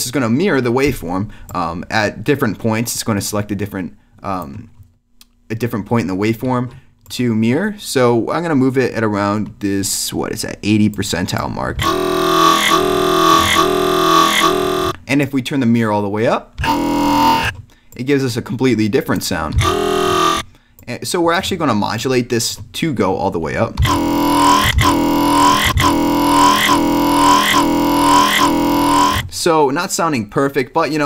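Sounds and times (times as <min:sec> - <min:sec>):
vowel-like synthesizer bass notes: 0:11.4 - 0:15.0, 0:16.6 - 0:17.6, 0:19.2 - 0:20.5, 0:23.8 - 0:29.4.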